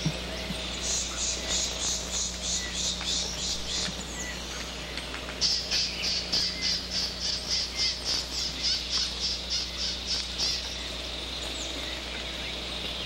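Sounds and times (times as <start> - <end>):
bird calling harsh high notes: 5.4 - 12.6.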